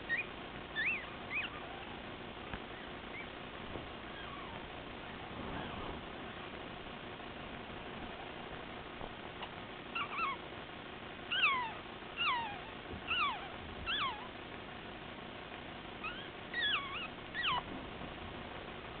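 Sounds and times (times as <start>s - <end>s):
puppy whimpering: 0.0s - 2.0s, 2.7s - 3.4s, 4.0s - 4.6s, 10.0s - 10.4s, 11.3s - 14.3s, 16.0s - 17.7s.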